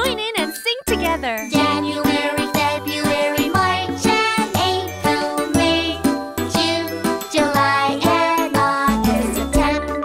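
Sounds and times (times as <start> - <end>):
children's song with jingly accompaniment: 0.0 - 10.0.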